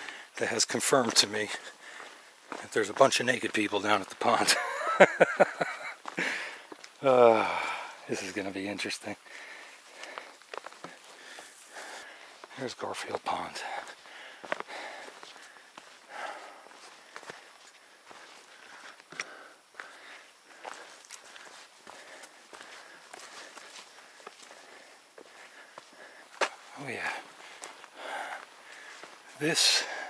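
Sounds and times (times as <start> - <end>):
boot footsteps on rocky trail: 0.0 - 7.9, 9.2 - 30.0.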